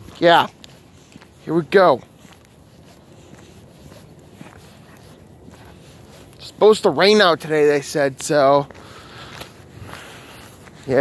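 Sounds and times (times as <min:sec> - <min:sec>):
footsteps of person walking: 0:00.0 - 0:11.0.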